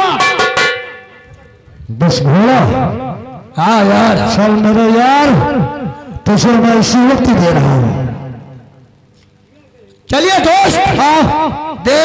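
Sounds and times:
amplified voice speaking: 1.9s - 8.2s.

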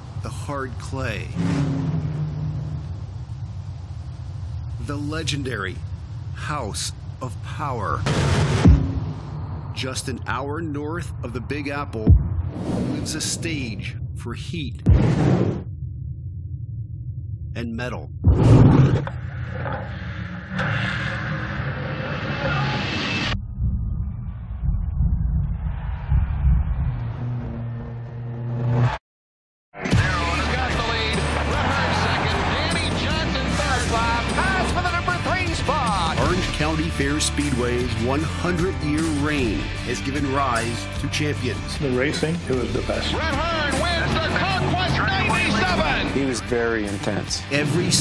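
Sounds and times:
race car engine rumbling: 0.0s - 15.0s, 29.9s - 48.0s
low hum: 0.0s - 29.0s
low rumble: 1.3s - 28.7s.

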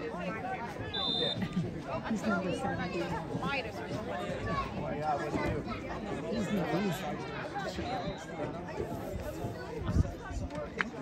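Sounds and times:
overlapping voices talking: 0.0s - 11.0s.

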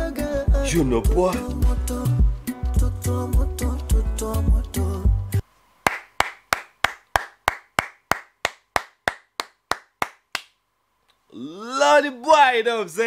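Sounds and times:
person clapping hands: 5.9s - 10.6s
man exclaiming: 11.3s - 13.0s.

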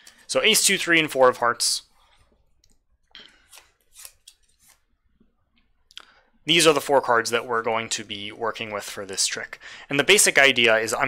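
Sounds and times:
playing cards clicking and rustling: 3.3s - 4.9s.

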